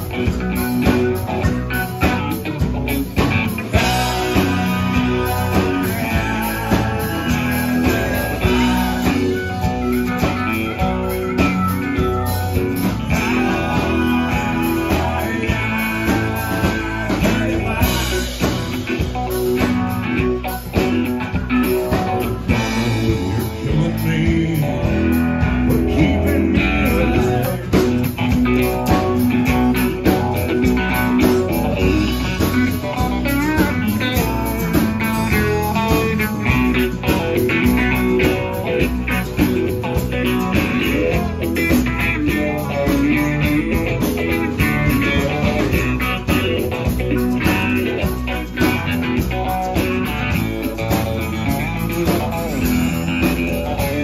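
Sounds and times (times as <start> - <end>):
drums: 0.0 - 54.0
electric bass: 0.0 - 54.0
electric guitar: 0.0 - 54.0
harmonica: 47.1 - 54.0.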